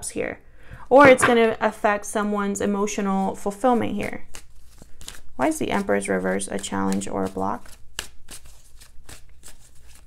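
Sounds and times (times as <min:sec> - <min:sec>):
cards being shuffled: 0:04.1 - 0:05.9, 0:06.5 - 0:10.0.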